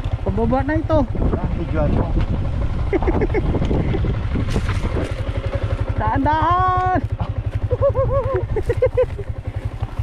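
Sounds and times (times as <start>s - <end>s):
motorcycle engine under load: 0.0s - 10.0s
wind buffeting microphone: 0.3s - 6.2s.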